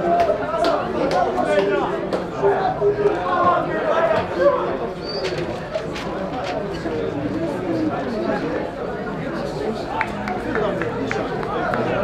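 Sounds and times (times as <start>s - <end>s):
spectators chatting: 0.0s - 12.0s.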